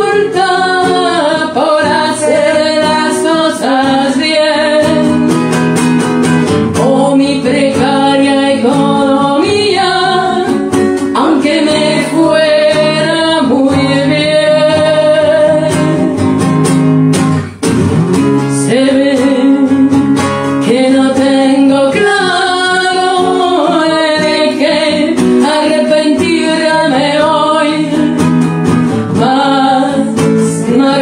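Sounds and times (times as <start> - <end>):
person singing: 0.0 - 5.3, 6.7 - 16.4, 18.4 - 28.2, 29.1 - 31.0
acoustic guitar: 0.0 - 31.0.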